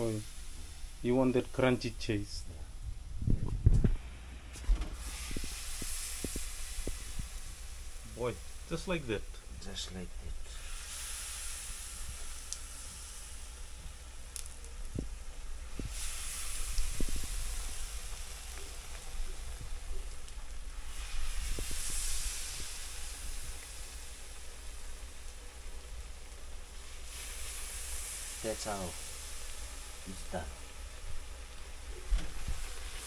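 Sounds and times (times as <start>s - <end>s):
batter sizzling in hot oil: 0.0s - 3.2s, 5.0s - 33.0s.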